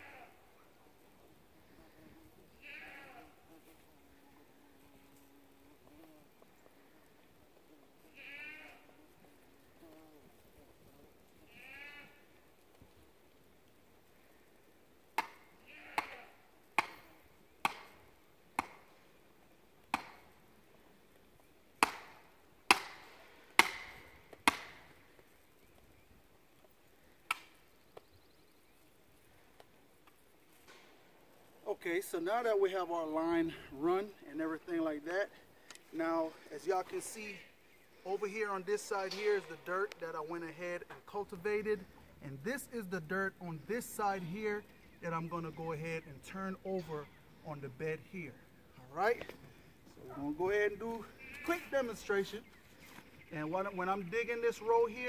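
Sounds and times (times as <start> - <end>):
animal bleating: 0.0 - 0.4, 1.7 - 6.3, 8.0 - 10.2, 11.4 - 12.4, 15.6 - 16.4, 50.9 - 52.2
sledgehammer striking stake: 21.8 - 24.8.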